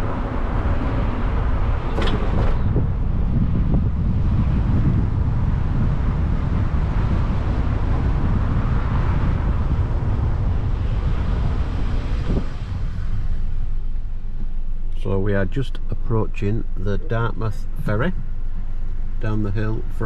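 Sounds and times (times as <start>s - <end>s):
car engine and road rumble: 0.0s - 20.0s
wind buffeting microphone: 0.0s - 20.0s.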